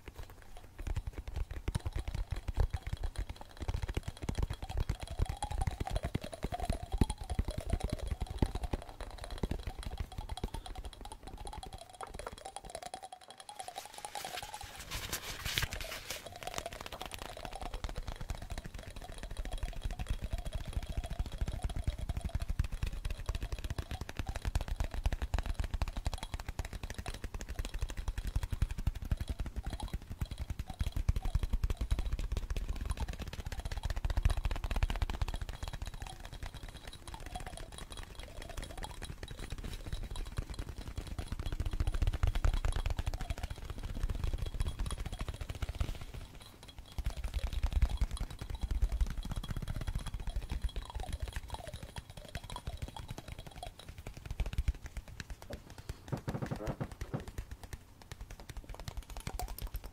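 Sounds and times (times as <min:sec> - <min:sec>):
fingertip tapping on microphone: 0:00.0 - 0:12.8, 0:46.8 - 0:59.9.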